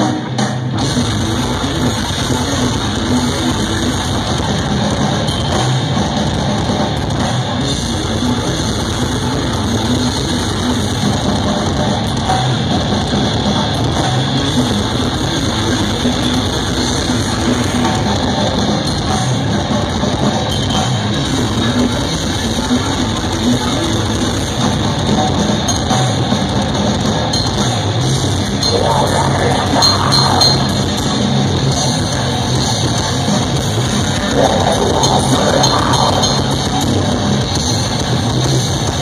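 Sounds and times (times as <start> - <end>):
death metal band playing live: 0.0 - 39.0.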